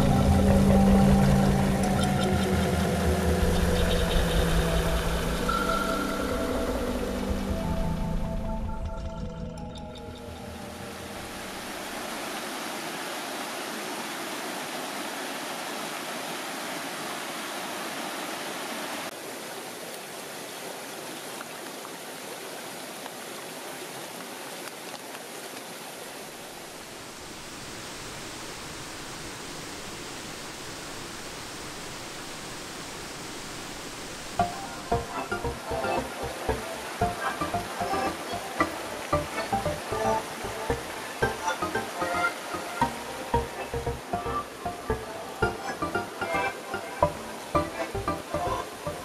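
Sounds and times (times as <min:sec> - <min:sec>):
mountain stream rushing: 0:00.0 - 0:08.4, 0:10.4 - 0:49.0.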